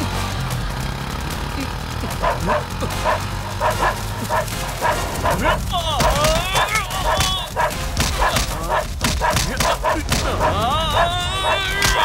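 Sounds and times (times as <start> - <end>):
bark-like vocal stabs: 2.0 - 12.0.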